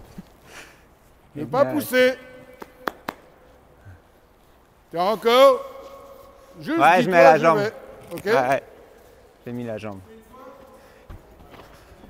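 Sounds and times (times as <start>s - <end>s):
man speaking: 1.3s - 2.9s, 4.9s - 10.9s.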